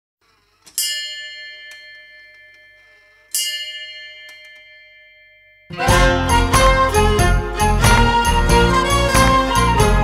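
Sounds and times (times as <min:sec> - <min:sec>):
bell ringing: 0:00.2 - 0:09.9.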